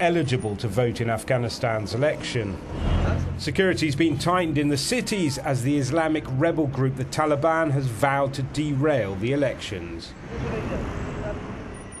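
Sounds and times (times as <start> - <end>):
cars on a road: 0.0 - 12.0.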